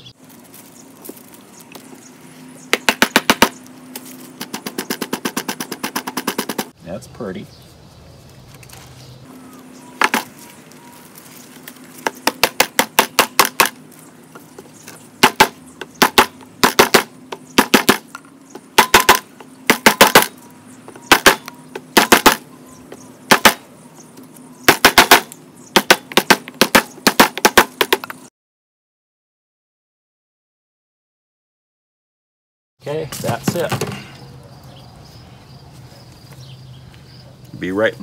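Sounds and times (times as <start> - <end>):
hammer knocking on wooden block: 2.7 - 3.6, 12.0 - 13.8, 15.2 - 18.0, 18.8 - 20.3.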